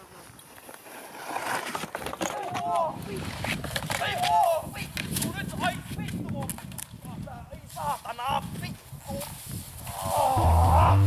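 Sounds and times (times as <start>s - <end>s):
scattered voice sounds: 10.4s - 11.0s.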